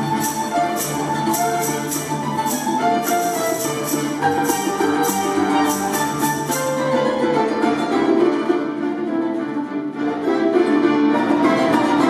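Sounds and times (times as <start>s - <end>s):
folk ensemble with accordion and piano: 0.0s - 12.0s.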